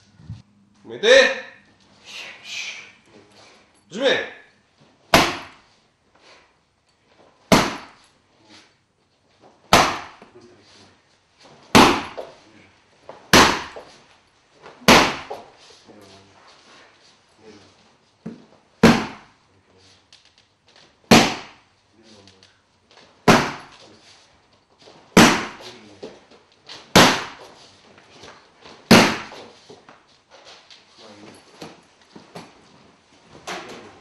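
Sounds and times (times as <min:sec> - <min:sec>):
strikes on a padded kick shield: 0:05.1 - 0:05.6, 0:07.5 - 0:08.0, 0:09.7 - 0:10.2, 0:11.7 - 0:12.3, 0:13.3 - 0:13.9, 0:14.8 - 0:15.5, 0:18.8 - 0:19.3, 0:21.1 - 0:21.6, 0:23.2 - 0:23.7, 0:25.2 - 0:25.7, 0:26.9 - 0:27.5, 0:28.9 - 0:29.5.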